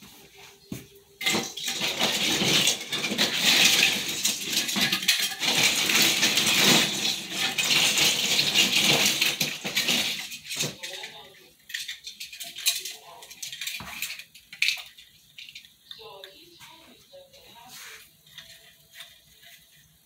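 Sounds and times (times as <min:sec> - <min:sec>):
ornaments clinking and rustling: 0:01.1 - 0:16.5, 0:17.6 - 0:20.0.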